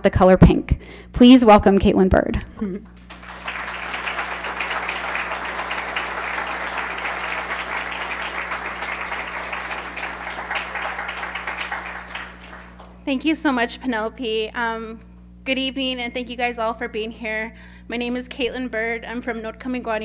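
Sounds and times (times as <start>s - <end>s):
audience applauding: 3.0s - 13.0s.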